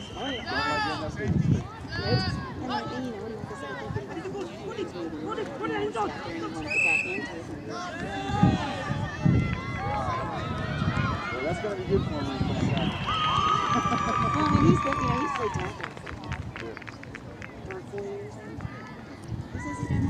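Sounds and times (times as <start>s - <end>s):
boys and adult talking: 0.1s - 13.0s, 14.1s - 20.0s.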